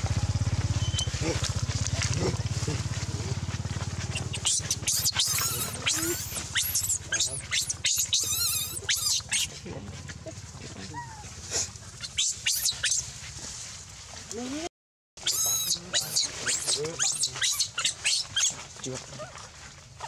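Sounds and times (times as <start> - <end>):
baby monkey screaming: 4.1 - 9.6, 12.0 - 13.1, 15.2 - 18.6.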